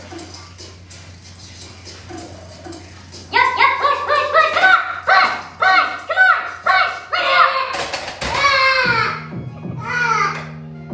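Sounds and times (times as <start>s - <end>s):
high-pitched shouts of encouragement: 3.3s - 9.3s.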